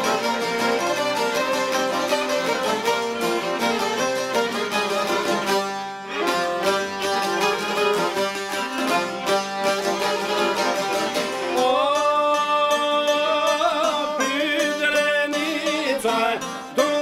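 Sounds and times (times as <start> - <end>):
accordion: 0.0 - 17.0
plucked lutes: 0.0 - 17.0
violin: 0.0 - 17.0
man singing: 11.3 - 17.0.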